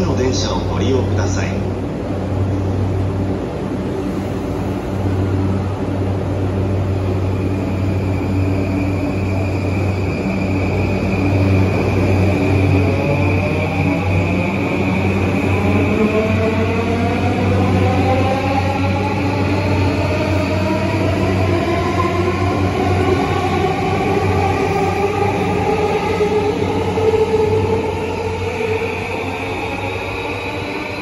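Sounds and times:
train motor inverter whine: 0:00.0 - 0:31.0.

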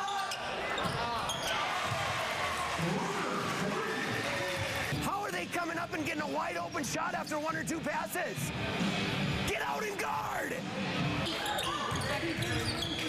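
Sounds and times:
crowd cheering: 0:00.0 - 0:05.0.

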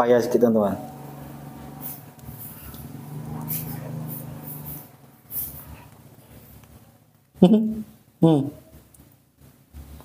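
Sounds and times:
man humming: 0:07.4 - 0:08.7.

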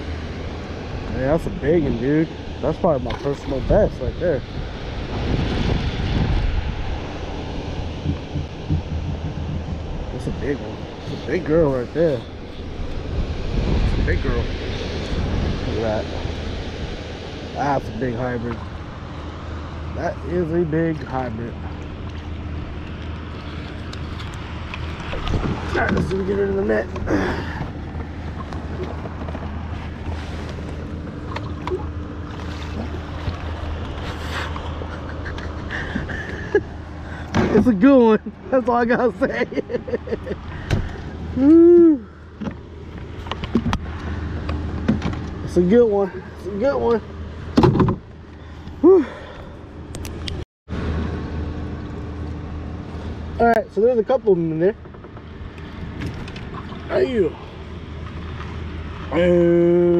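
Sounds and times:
wind buffeting microphone: 0:00.0 - 0:19.1, 0:21.5 - 0:36.4
water against kayak hull: 0:04.4 - 0:17.5, 0:21.0 - 0:38.4, 0:54.8 - 0:59.2.

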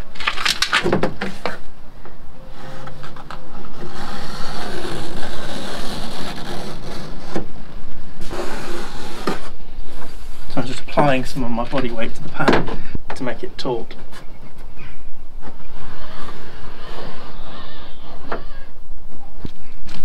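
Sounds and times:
scratchy scraping: 0:02.4 - 0:07.4, 0:08.2 - 0:10.9, 0:15.4 - 0:18.6.

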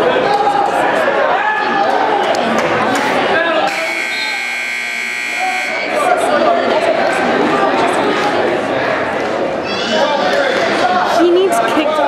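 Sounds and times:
timer buzzer steady tone: 0:03.7 - 0:06.0.

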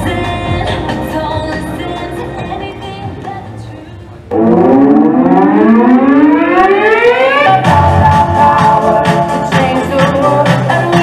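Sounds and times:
dance music with a beat: 0:00.0 - 0:11.0
rising siren-like tone: 0:04.3 - 0:07.9.

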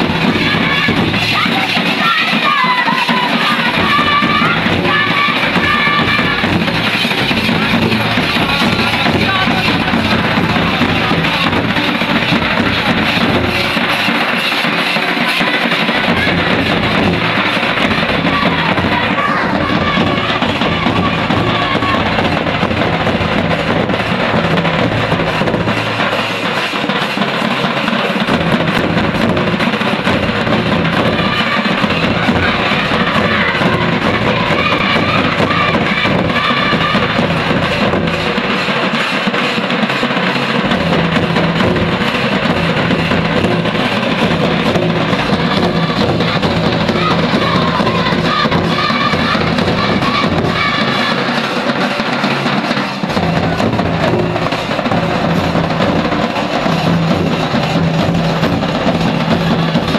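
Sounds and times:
voices singing: 0:00.0 - 0:27.2, 0:27.8 - 0:59.9
barrel drum beating: 0:00.0 - 0:59.9
kettle drums beating: 0:00.0 - 0:59.9.

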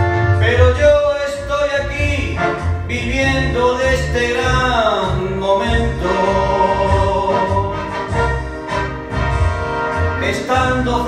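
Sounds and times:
backing track with bass: 0:00.0 - 0:11.0
man singing into microphone: 0:00.4 - 0:08.3, 0:10.2 - 0:11.0.

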